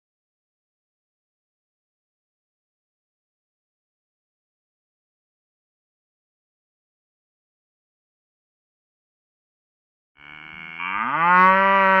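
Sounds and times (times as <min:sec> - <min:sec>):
cow mooing: 0:10.2 - 0:12.0.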